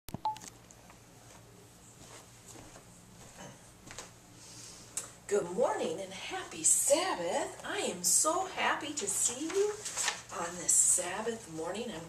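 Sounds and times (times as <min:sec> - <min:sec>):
faint room hum: 0:00.1 - 0:12.0.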